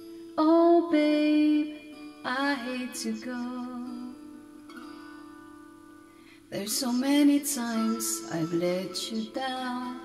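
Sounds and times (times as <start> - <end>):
guitar chords through loudspeaker: 0.0 - 10.0
person singing: 0.4 - 4.2, 6.5 - 10.0.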